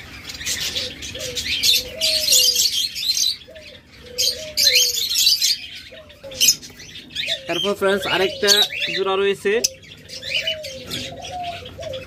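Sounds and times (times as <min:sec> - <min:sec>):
small birds chirping: 0:00.0 - 0:12.0
doves cooing: 0:00.1 - 0:12.0.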